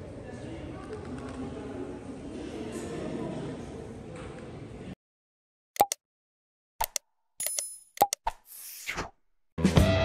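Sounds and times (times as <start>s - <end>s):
sharp clicks and pops: 5.8s - 6.0s, 6.8s - 8.4s.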